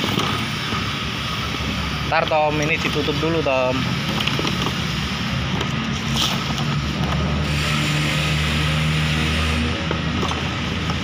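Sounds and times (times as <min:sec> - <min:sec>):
low machine drone: 0:00.0 - 0:11.0.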